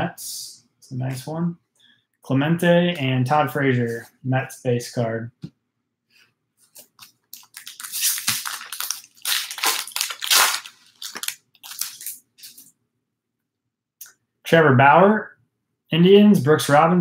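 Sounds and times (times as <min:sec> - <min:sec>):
wrapper crinkling as torn open: 0:07.3 - 0:12.7.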